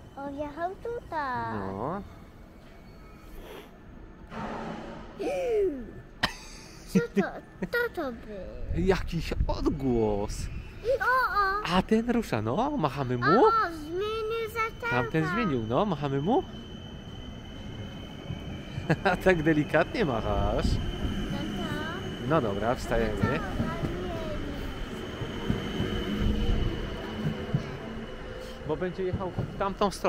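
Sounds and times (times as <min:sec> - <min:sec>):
electric train rolling rumble: 0:00.0 - 0:30.0.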